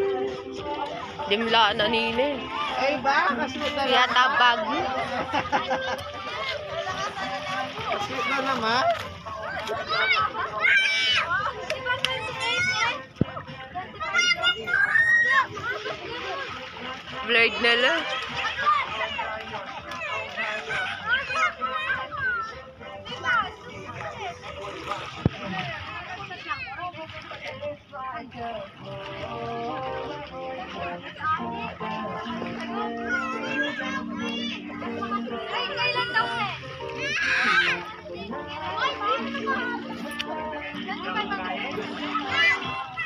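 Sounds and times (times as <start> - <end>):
children and adults calling out: 2.3 - 24.6, 29.4 - 43.0.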